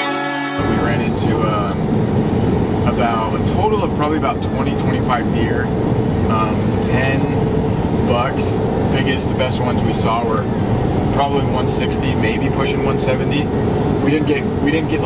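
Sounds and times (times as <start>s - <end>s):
road and engine rumble in cabin: 0.0s - 15.0s
man talking: 0.6s - 1.8s, 2.8s - 7.4s, 8.0s - 10.5s, 11.1s - 15.0s.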